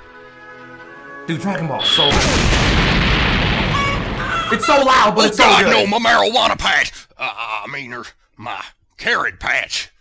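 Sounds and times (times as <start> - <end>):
cartoon crash boom and rumble: 1.8 - 4.8.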